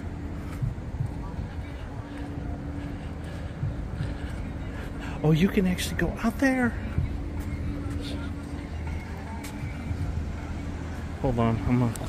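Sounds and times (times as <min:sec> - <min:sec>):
faint steady hum: 0:00.0 - 0:12.0
road traffic rumble: 0:00.0 - 0:12.0.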